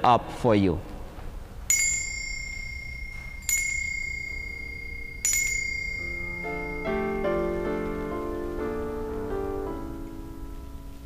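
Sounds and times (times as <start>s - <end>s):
altar bell ringing: 1.7s - 9.1s
soft keyboard music: 5.2s - 11.0s.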